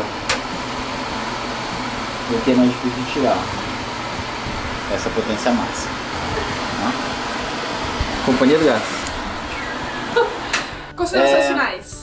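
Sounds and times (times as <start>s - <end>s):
range hood fan running: 0.0s - 11.8s.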